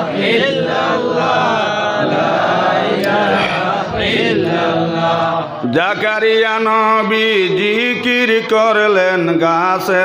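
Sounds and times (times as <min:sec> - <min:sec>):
voices chanting together: 0:00.0 - 0:09.3.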